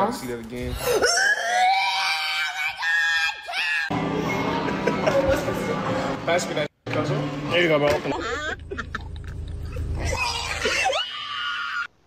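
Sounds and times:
person screaming: 0:00.8 - 0:03.9, 0:10.1 - 0:11.9.

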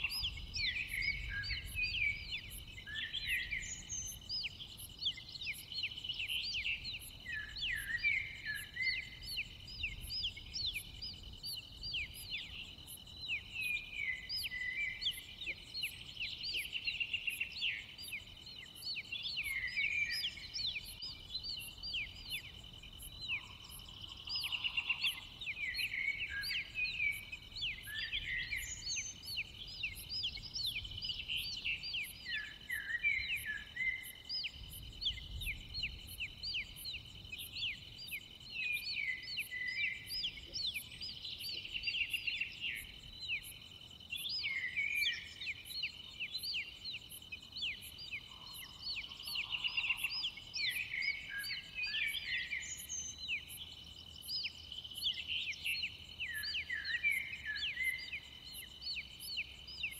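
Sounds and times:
birds chirping: 0:00.0 - 0:59.9
crickets droning: 0:00.0 - 0:59.9.

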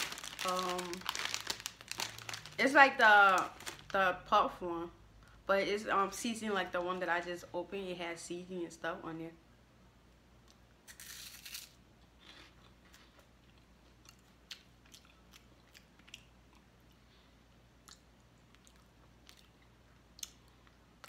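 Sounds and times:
snack crunching: 0:10.5 - 0:17.0, 0:17.8 - 0:20.8
quiet chewing: 0:12.2 - 0:20.8.

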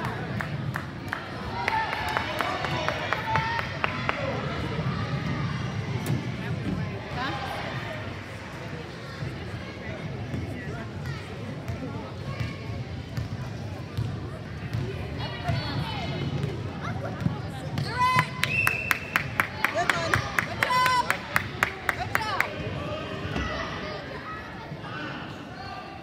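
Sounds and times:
background chatter: 0:00.0 - 0:26.0.

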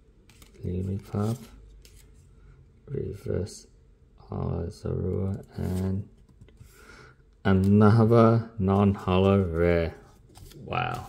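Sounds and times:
trading cards rubbing and slipping: 0:00.3 - 0:02.3, 0:05.4 - 0:06.2.

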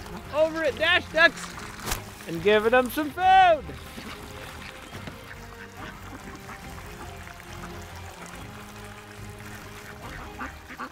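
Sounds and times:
ducks quacking: 0:00.0 - 0:10.9
soft background music: 0:00.0 - 0:10.9.

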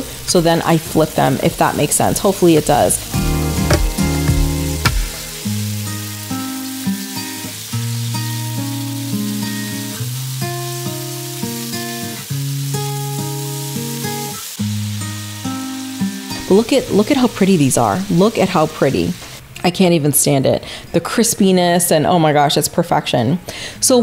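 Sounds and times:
patties sizzling in oil: 0:00.0 - 0:19.4
background music with held notes: 0:02.4 - 0:16.5.

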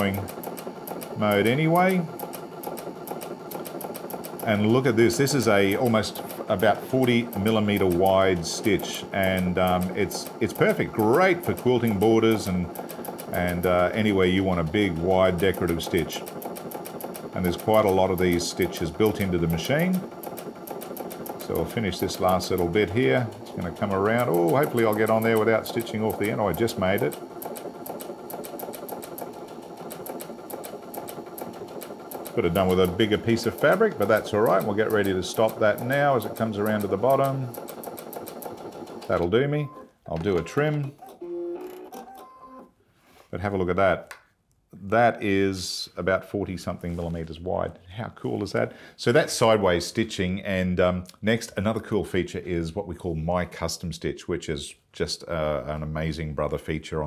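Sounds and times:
sewing machine running: 0:00.0 - 0:39.3.

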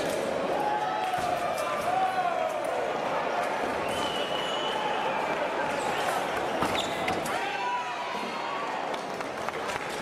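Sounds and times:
voices in large hall: 0:00.0 - 0:10.0
shoes squeaking on floor: 0:06.0 - 0:07.3.

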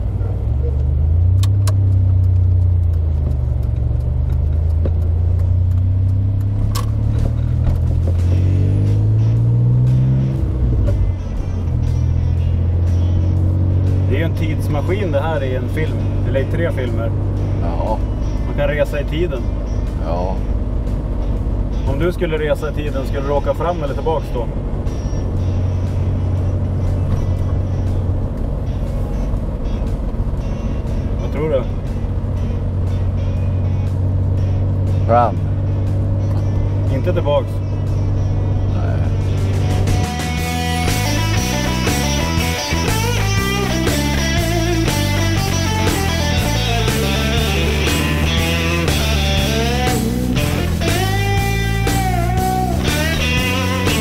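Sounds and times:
background music: 0:00.0 - 0:54.0
car engine drone from inside: 0:00.0 - 0:54.0.

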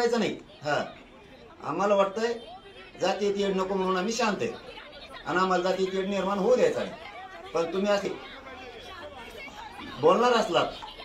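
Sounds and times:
faint chatter of people: 0:00.0 - 0:11.0.

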